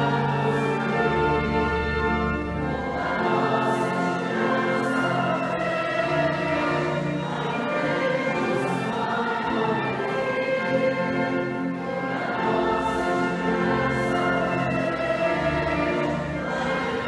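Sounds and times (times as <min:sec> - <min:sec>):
choir singing a hymn: 0:00.0 - 0:17.0
instrumental accompaniment: 0:00.0 - 0:17.0.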